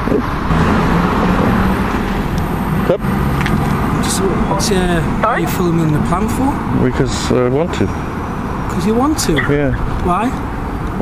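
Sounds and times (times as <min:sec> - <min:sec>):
road traffic noise: 0:00.0 - 0:11.0
vehicle engine humming: 0:00.0 - 0:11.0.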